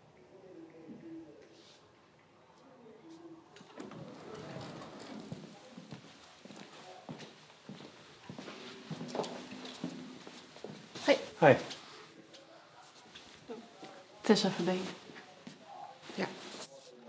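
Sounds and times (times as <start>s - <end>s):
footsteps on hard floor: 5.1s - 11.9s.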